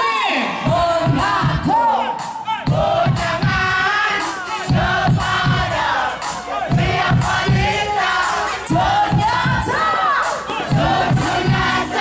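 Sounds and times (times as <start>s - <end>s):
crowd singing and shouting: 0.0s - 12.0s
live band playing upbeat song: 0.0s - 12.0s
sung vocals: 0.0s - 12.0s.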